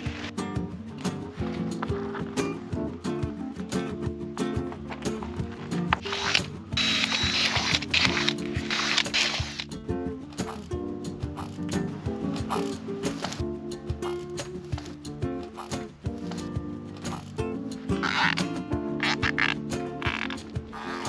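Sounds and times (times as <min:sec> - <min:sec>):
background music with steady beat: 0:00.0 - 0:21.0.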